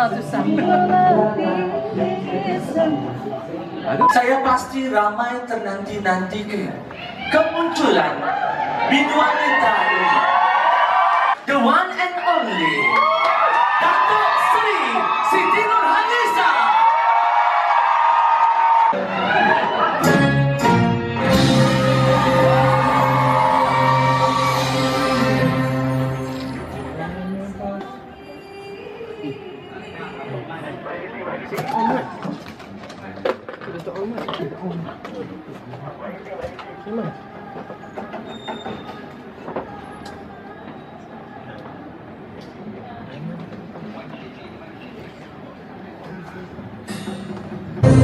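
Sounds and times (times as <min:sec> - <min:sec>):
dense background noise: 0:00.0 - 0:48.0
crowd cheering: 0:06.9 - 0:27.3, 0:30.8 - 0:32.5
band playing: 0:19.0 - 0:27.6, 0:47.6 - 0:48.0.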